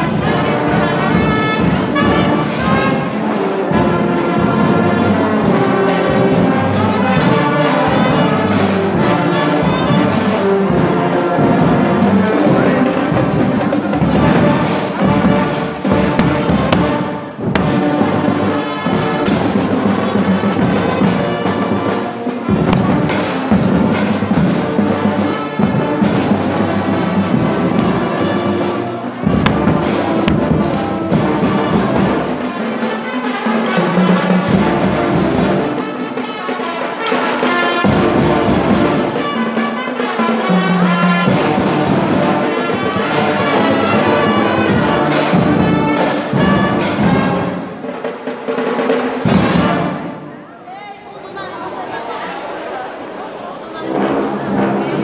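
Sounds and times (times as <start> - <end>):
snare and bass drums: 0.0 - 33.0, 37.1 - 50.2
brass instruments: 0.0 - 50.8, 51.4 - 55.0
marching band playing: 0.0 - 55.0.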